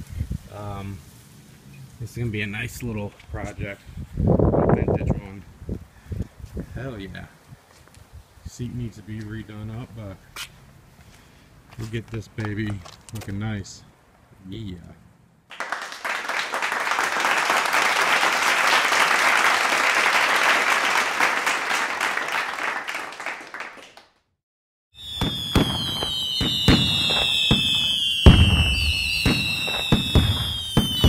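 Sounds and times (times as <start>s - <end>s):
firework bangs: 25.0s - 31.0s
fireworks crackling: 25.0s - 31.0s
whistling rockets: 25.0s - 31.0s.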